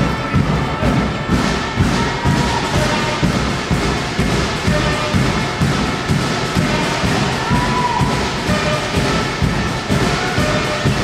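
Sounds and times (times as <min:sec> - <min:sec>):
music playing: 0:00.0 - 0:11.0.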